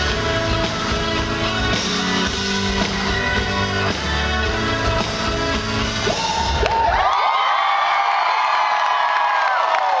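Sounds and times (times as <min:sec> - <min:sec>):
live rock band playing: 0:00.0 - 0:06.9
crowd cheering and screaming: 0:05.8 - 0:10.0.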